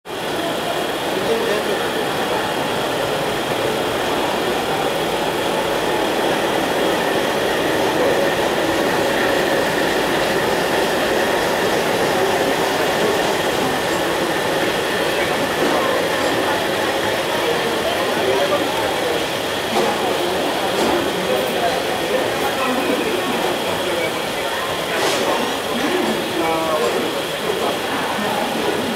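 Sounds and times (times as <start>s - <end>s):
train wheels rumbling on rails: 0.1s - 28.9s.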